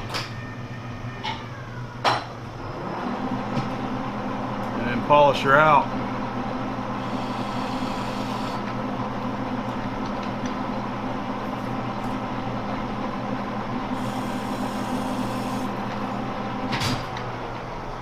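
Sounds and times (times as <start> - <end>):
lathe running with steady drone: 2.7 - 16.8.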